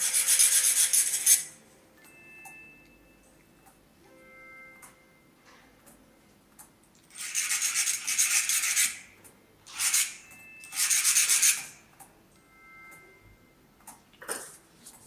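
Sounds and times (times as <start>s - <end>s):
file rasping on sheet metal: 0.0s - 1.5s, 7.1s - 9.0s.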